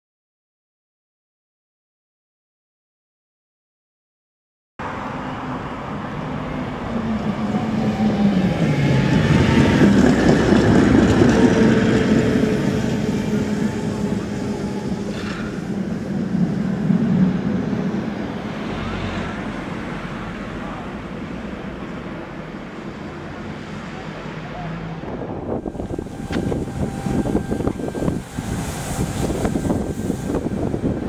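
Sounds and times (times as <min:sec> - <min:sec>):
tram running on rails: 0:04.8 - 0:31.0
motor whine gliding down: 0:25.0 - 0:31.0.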